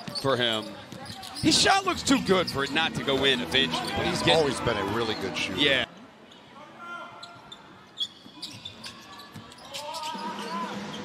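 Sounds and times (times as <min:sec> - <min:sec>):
sneaker squeak: 0:00.0 - 0:04.1, 0:07.2 - 0:11.0
faint players' voices: 0:00.0 - 0:11.0.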